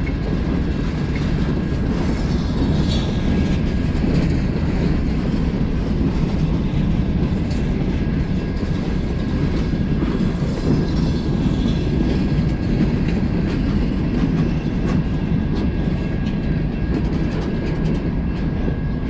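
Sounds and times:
freight train wheels rumbling on rails: 0.0 - 19.0.

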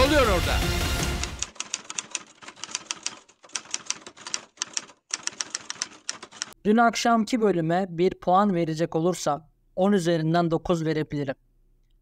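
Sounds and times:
rapid key clicks: 1.0 - 6.6.

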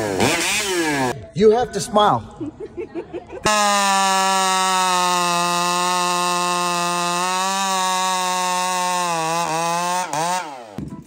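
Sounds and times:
chainsaw at full throttle: 0.0 - 1.2, 3.5 - 10.8.

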